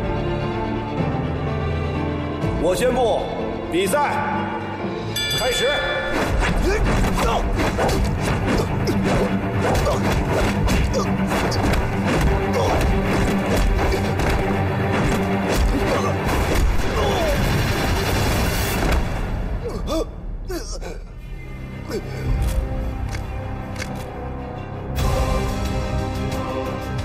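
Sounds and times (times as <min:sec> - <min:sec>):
dramatic fight music: 0:04.4 - 0:27.0
punch and kick impacts: 0:06.1 - 0:17.3.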